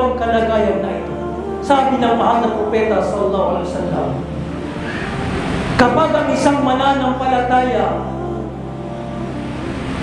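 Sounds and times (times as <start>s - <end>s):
low hum: 0.0s - 10.0s
even rushing noise: 1.4s - 10.0s.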